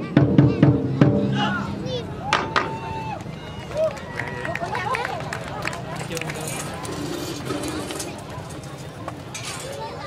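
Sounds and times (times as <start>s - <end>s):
outdoor crowd noise: 0.0s - 10.0s
indistinct voices: 5.6s - 10.0s.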